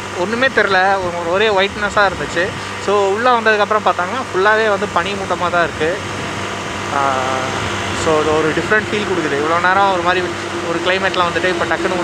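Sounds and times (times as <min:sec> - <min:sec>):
motorcycle engine hum: 0:00.0 - 0:12.0
wind noise: 0:00.6 - 0:03.1, 0:04.9 - 0:12.0.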